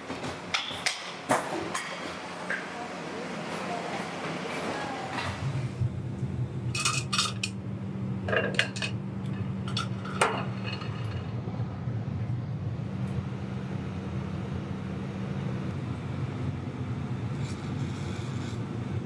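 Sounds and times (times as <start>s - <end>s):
steady low hum: 0.0s - 19.0s
metal tools clinking: 6.8s - 7.6s.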